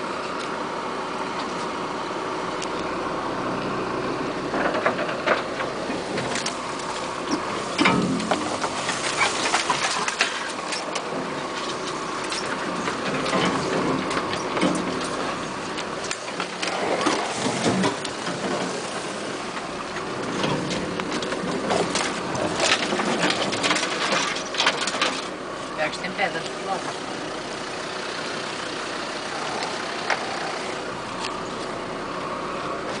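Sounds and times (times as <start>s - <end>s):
body and track noise: 0.0s - 28.0s
low engine hum: 0.0s - 33.0s
vehicle rattles and knocks: 0.0s - 33.0s.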